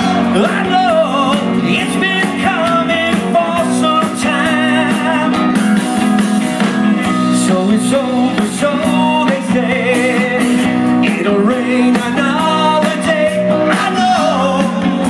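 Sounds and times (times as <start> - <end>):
wavering lead vocal: 0.0 - 5.6, 7.1 - 15.0
rock band playing: 0.0 - 15.0.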